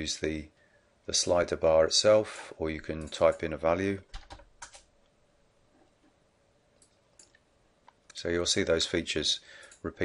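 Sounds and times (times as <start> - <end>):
computer keyboard keystrokes: 4.1 - 4.9.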